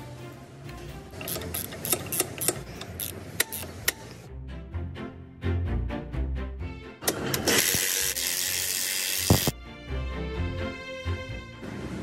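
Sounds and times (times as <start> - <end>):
background music: 0.0 - 12.0
ratchet clattering on bolt: 1.2 - 4.0.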